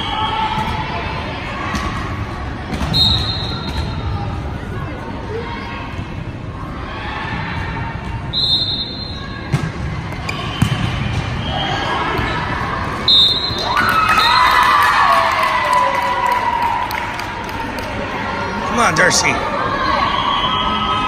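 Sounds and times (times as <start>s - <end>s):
spectators shouting and cheering: 11.3s - 21.0s.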